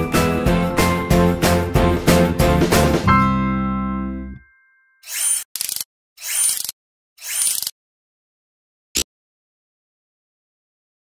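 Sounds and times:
sharp click: 5.0 - 7.8.

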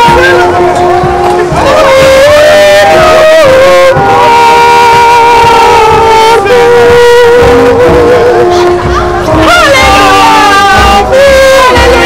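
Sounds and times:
voices singing in harmony: 0.0 - 12.0.

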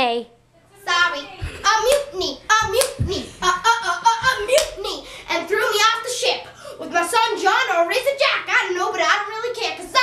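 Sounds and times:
boy rapping quickly: 0.8 - 10.0
hand claps: 1.8 - 3.3, 4.2 - 4.8.

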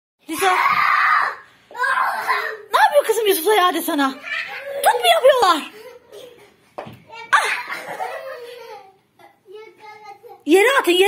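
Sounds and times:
child screaming: 0.3 - 2.8.

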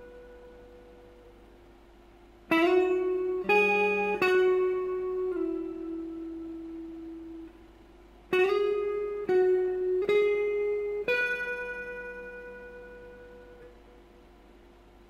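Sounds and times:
clean electric guitar notes: 0.0 - 1.4, 2.5 - 7.7, 8.3 - 14.0.

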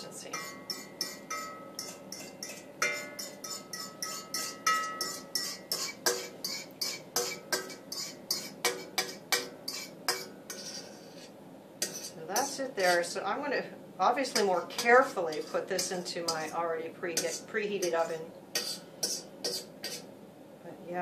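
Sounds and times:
spatula scraping metal bowl: 0.0 - 13.2, 14.2 - 20.1
metal bowl ringing: 0.3 - 9.1.

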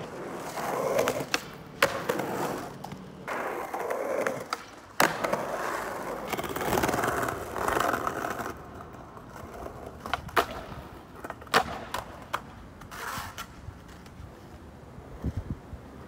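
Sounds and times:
skateboard clacks: 0.0 - 16.0
skateboard wheels on rough asphalt: 0.0 - 16.0.

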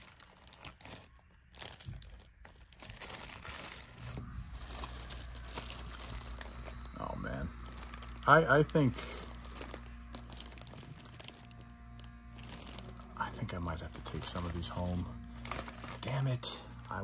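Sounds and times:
low steady hum: 0.0 - 17.0
plastic bags crinkling: 0.0 - 17.0.

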